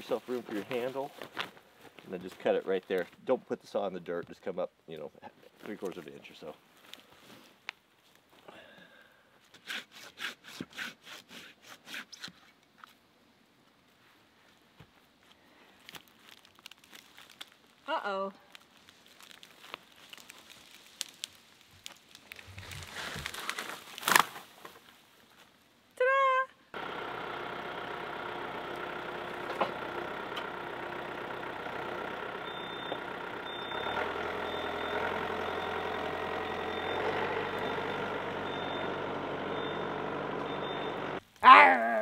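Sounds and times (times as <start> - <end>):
diesel tractor running: 26.8 - 41.2
reverse alarm beeping: 32.4 - 41.2.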